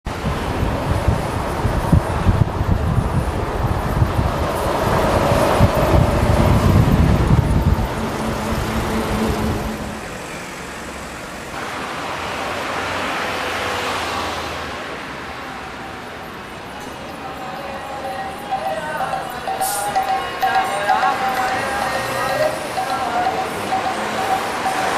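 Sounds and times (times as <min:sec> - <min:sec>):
diesel bus rumble: 0:00.0 - 0:24.9
street traffic: 0:00.0 - 0:24.9.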